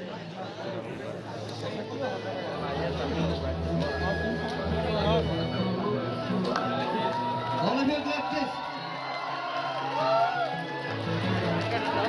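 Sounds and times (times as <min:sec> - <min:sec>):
crowd cheering and talking: 0:00.0 - 0:12.0.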